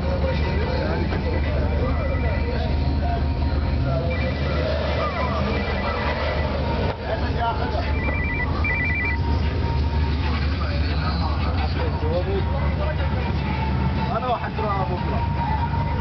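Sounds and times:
car engine running: 0.0 - 16.0
people's voices: 0.0 - 16.0
two-tone electronic trill: 0.5 - 9.2.

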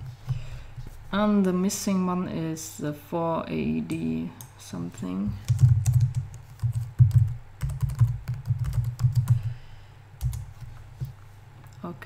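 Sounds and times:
typing on computer keyboard: 5.4 - 9.5, 10.2 - 10.5.

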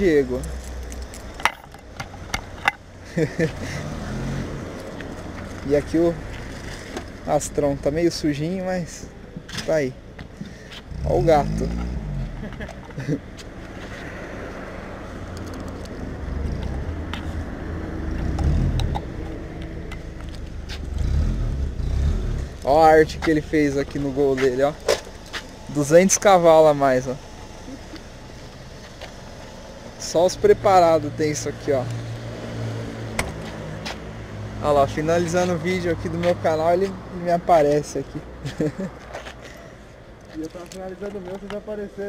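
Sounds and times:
car engine rumbling: 0.0 - 42.0
car engine idling: 18.1 - 31.5.

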